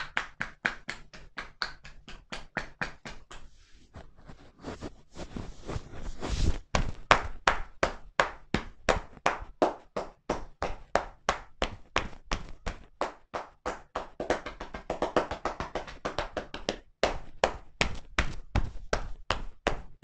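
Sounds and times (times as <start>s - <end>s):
hands slapping shoulders: 0.0s - 4.3s, 5.7s - 20.0s.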